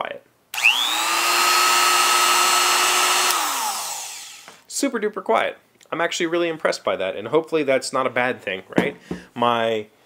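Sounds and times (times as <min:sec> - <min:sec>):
router motor whining: 0:00.6 - 0:04.6.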